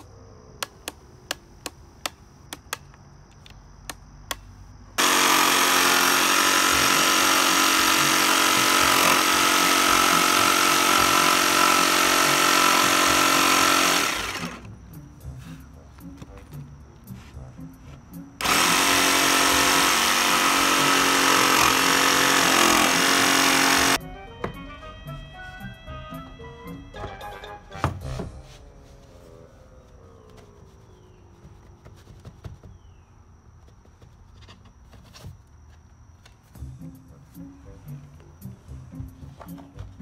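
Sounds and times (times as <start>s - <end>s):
jigsaw sawing through board: 5.0s - 14.7s, 18.4s - 24.0s.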